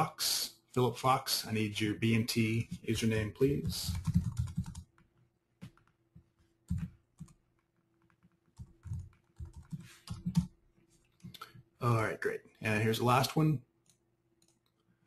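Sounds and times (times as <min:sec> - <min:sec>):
keyboard typing clicks: 0:03.9 - 0:05.0.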